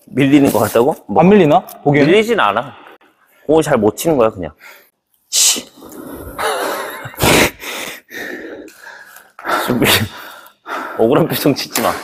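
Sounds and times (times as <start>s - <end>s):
person breathing hard: 6.0s - 11.1s.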